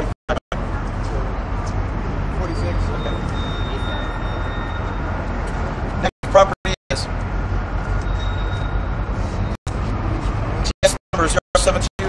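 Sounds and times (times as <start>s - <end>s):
road traffic rumble: 0.0s - 11.8s
man's voice: 6.2s - 7.1s, 10.8s - 12.0s.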